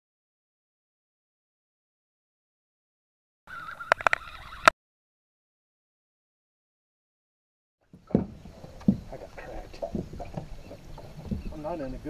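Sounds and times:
low rumble of boat on water: 0:07.8 - 0:12.0
dull thumps on a boat: 0:07.9 - 0:12.0.

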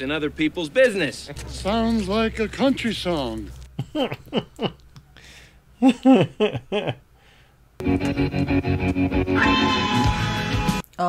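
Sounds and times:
person laughing: 0:03.8 - 0:05.0, 0:05.8 - 0:07.0
guitar music: 0:07.8 - 0:10.8.

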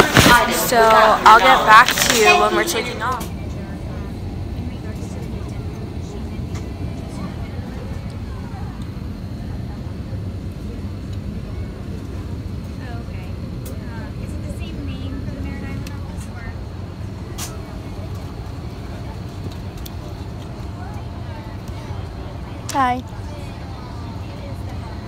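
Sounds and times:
faint indistinct voices: 0:00.0 - 0:25.0.

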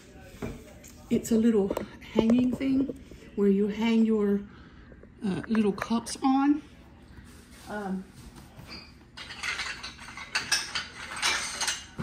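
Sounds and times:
ceramic saucers clinking: 0:08.6 - 0:12.0.

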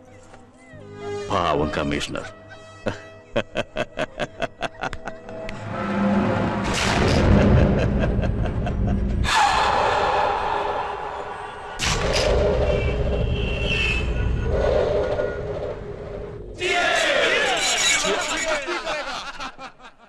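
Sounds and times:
dramatic film score: 0:00.2 - 0:17.0.

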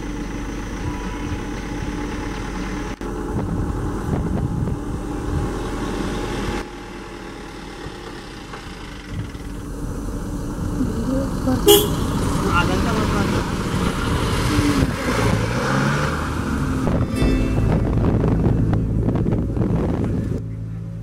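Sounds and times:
vehicle engine and road noise: 0:00.0 - 0:21.0
short horn toot: 0:11.7 - 0:12.2.

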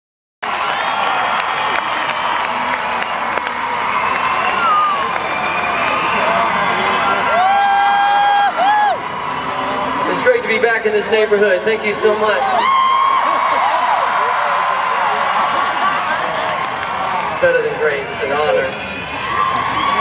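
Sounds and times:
crowd cheering: 0:00.4 - 0:20.0
high-pitched whoop: 0:03.8 - 0:06.4, 0:07.2 - 0:09.2, 0:12.4 - 0:14.6.

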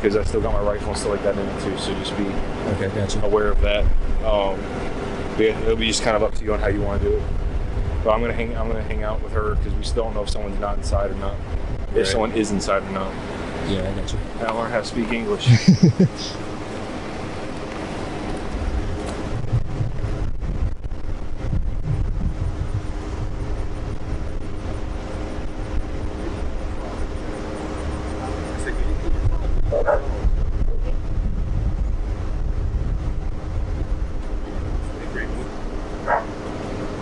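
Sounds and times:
faint steady hum: 0:00.0 - 0:37.0
low uneven rumble: 0:00.0 - 0:37.0
dog barking: 0:29.7 - 0:30.2, 0:36.0 - 0:36.3.

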